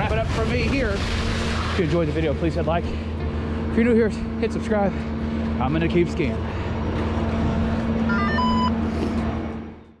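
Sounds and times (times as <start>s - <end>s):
chairlift machinery humming: 0.0s - 10.0s
electronic beeps: 8.1s - 8.8s.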